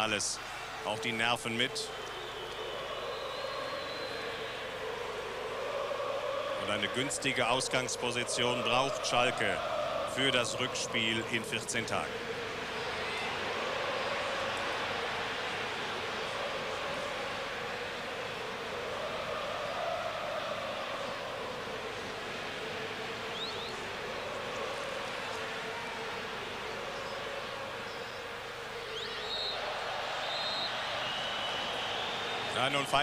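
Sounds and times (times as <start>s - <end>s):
crowd chanting: 0.0s - 33.0s
stadium crowd noise: 0.0s - 33.0s
referee's whistle: 29.0s - 29.6s, 30.2s - 33.0s.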